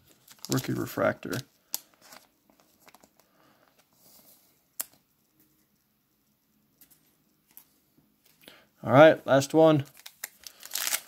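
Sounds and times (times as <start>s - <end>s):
cards rustling: 0.0s - 5.0s, 9.8s - 11.0s.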